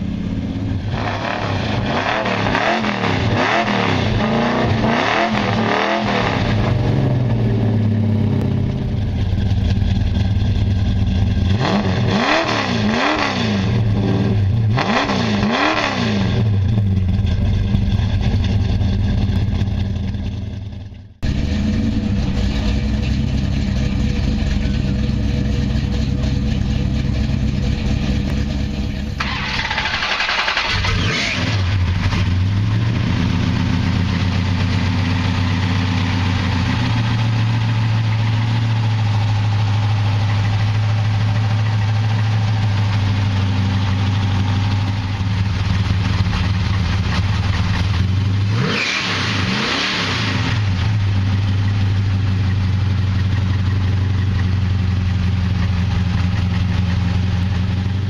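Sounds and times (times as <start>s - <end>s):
engine revving: 0.0s - 54.5s
car engine idling: 0.0s - 58.0s.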